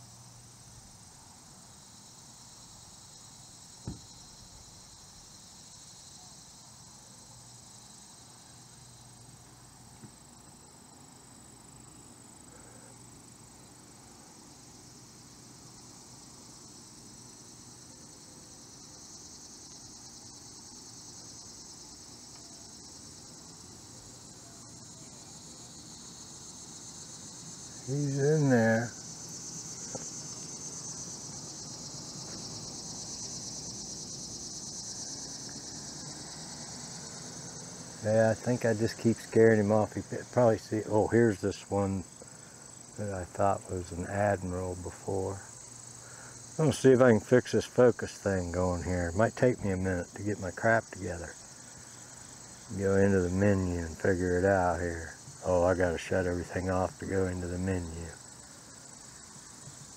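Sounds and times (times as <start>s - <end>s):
high-pitched insect chorus: 0.0s - 59.9s
man's voice murmuring: 27.9s - 29.0s, 38.0s - 42.0s, 43.0s - 45.4s, 46.6s - 51.3s, 52.7s - 58.1s.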